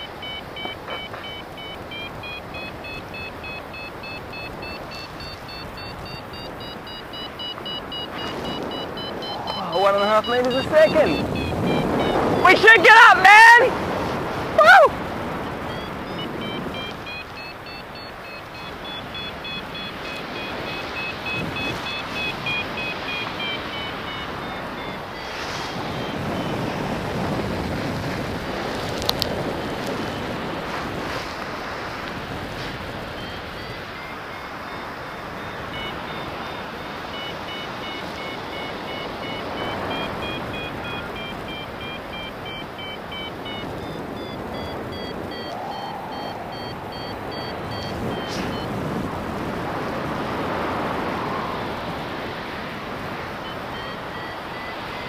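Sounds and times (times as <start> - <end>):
variometer beeping: 0.0 - 13.8, 14.4 - 55.0
wind on microphone: 0.0 - 55.0.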